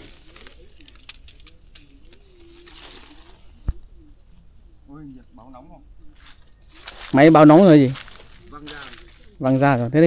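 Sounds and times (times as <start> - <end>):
branches and leaves rustling: 0.0 - 10.0.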